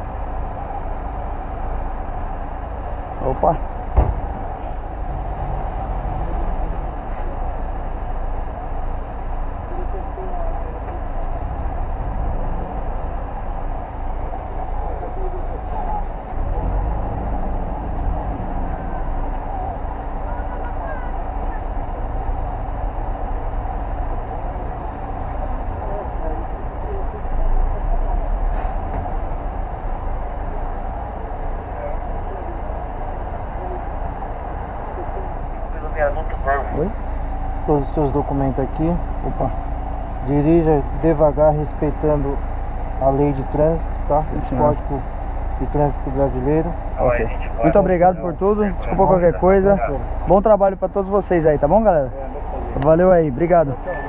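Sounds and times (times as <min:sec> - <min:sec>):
vehicles idling: 0:00.0 - 0:54.0
indistinct voices: 0:02.3 - 0:54.0.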